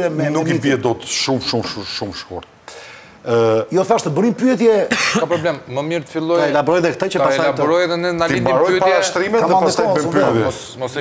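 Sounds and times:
man speaking: 0.0s - 2.5s, 3.2s - 11.0s.

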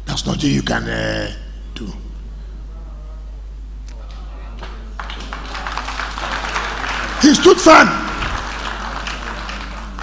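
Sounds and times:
crowd murmur in hall: 2.3s - 10.0s.

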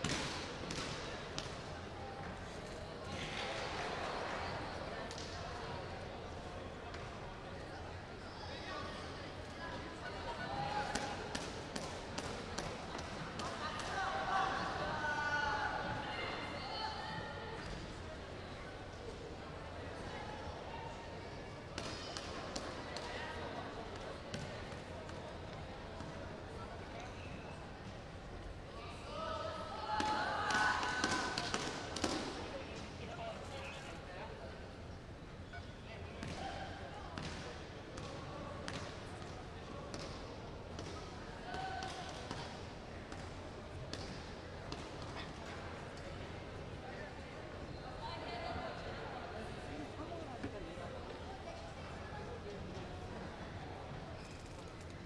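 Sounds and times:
background chatter of people: 0.0s - 55.0s.

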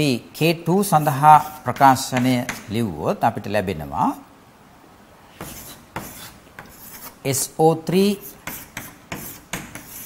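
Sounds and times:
chalk scraping on blackboard: 0.8s - 2.8s, 5.3s - 7.5s, 8.1s - 10.0s.

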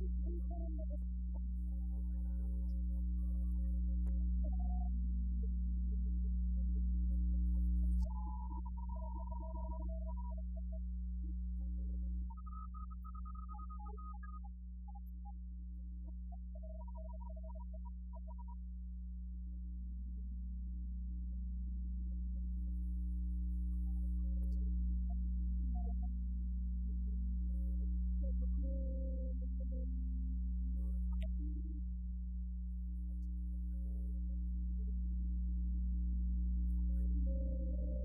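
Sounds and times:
electronic drone hum: 0.0s - 18.6s, 22.3s - 38.0s
faint flickering tones: 7.5s - 15.4s.

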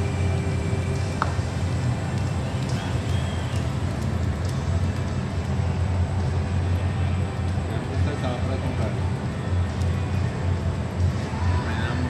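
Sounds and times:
ceiling fans rumbling: 0.0s - 12.0s.

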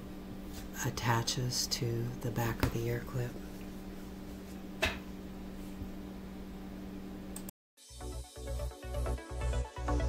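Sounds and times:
steady low hum: 0.0s - 7.5s.

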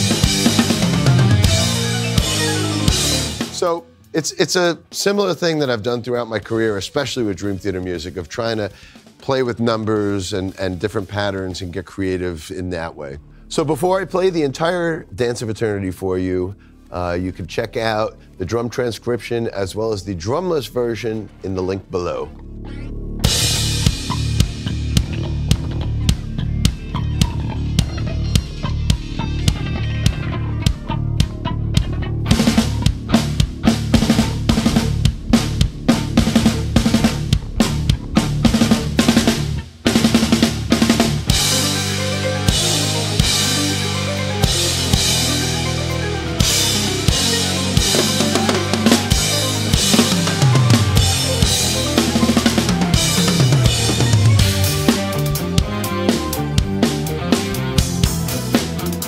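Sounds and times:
low guitar and bass riff: 0.0s - 3.6s, 22.2s - 59.0s
acoustic drum kit: 0.0s - 3.8s, 23.2s - 59.0s
band backing track: 0.0s - 11.7s, 23.2s - 59.0s
kick drum: 23.4s - 38.8s.

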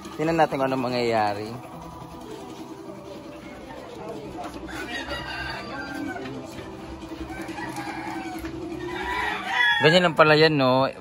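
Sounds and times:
chickens clucking: 0.0s - 10.3s
rooster crowing: 4.6s - 10.3s.

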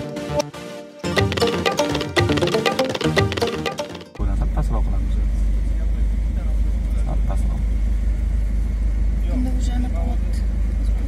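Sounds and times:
road noise inside car: 4.6s - 11.0s.

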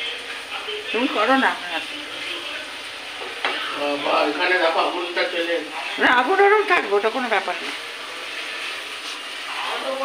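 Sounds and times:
gas stove burner hissing: 0.0s - 10.0s.

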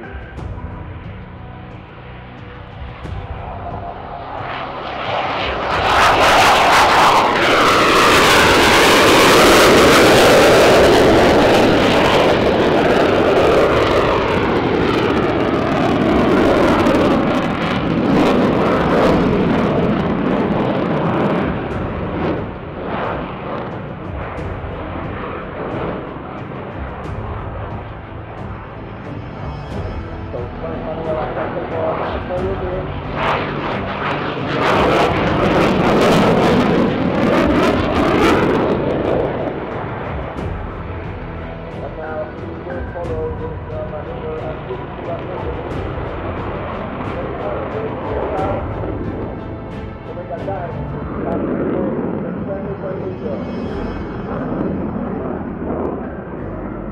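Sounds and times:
jet engines roaring: 0.0s - 56.9s.

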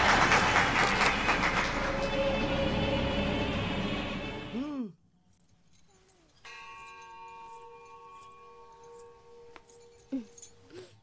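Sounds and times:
bell-like ringing tone: 5.8s - 10.6s.

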